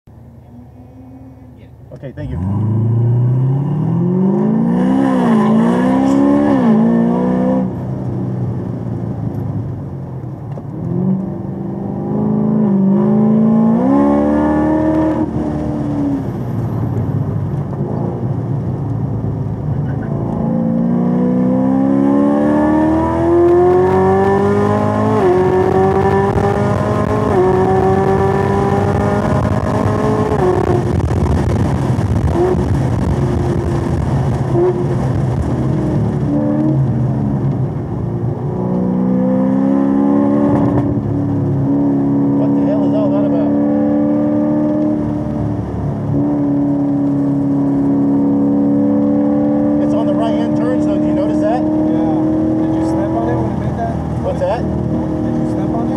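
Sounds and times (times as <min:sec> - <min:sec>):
car engine accelerating: 0:00.1 - 0:55.9.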